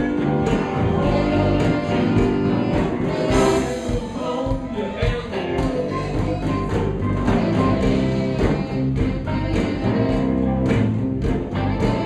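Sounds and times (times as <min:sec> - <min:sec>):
horn section: 0:00.0 - 0:12.0
live blues rock band playing: 0:00.0 - 0:12.0.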